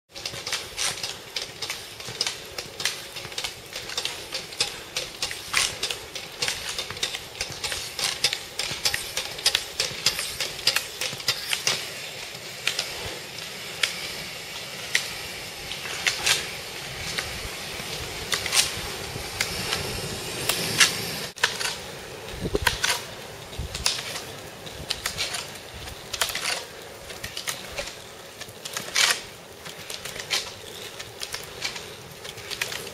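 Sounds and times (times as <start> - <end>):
roller-ski wheels rolling on pavement: 0.1 - 32.9
ski pole tips clicking on asphalt: 0.1 - 32.9.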